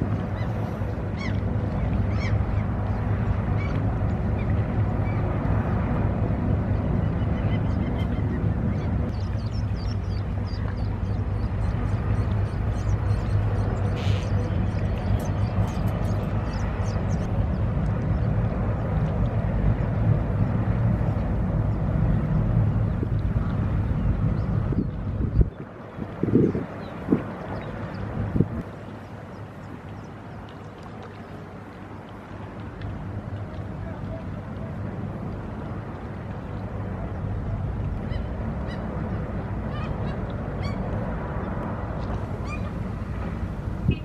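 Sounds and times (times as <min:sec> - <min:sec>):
low rumble: 0:00.0 - 0:28.6.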